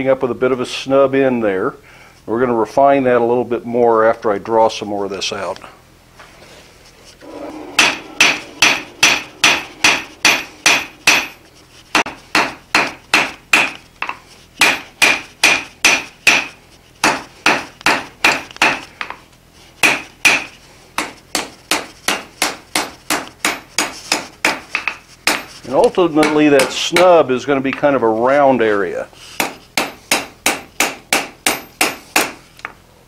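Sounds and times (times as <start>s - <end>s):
hammer ringing on anvil: 7.2s - 13.8s.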